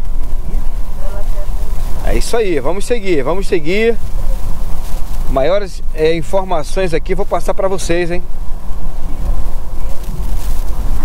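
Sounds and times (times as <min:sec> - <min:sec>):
road and engine rumble: 0:00.0 - 0:11.0
wind buffeting microphone: 0:00.0 - 0:11.0.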